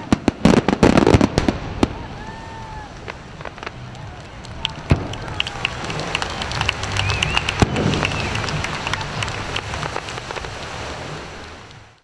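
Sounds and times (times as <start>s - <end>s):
firework bang: 0.0s - 3.8s, 7.5s - 8.7s
fireworks crackling: 0.0s - 12.0s.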